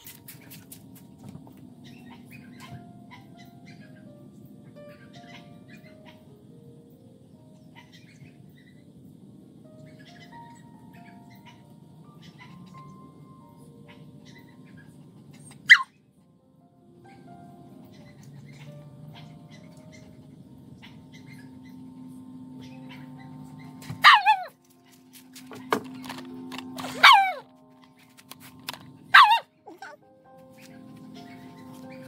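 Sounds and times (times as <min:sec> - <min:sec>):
bird chirps: 0:01.8 - 0:06.2, 0:29.1 - 0:32.0
dog yipping: 0:13.9 - 0:15.9, 0:23.8 - 0:24.6, 0:26.8 - 0:27.5, 0:29.1 - 0:30.0.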